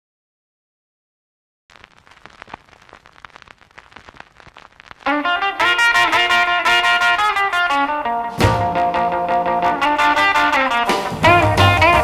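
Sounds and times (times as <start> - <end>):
vinyl hiss and crackles: 1.7 - 11.1.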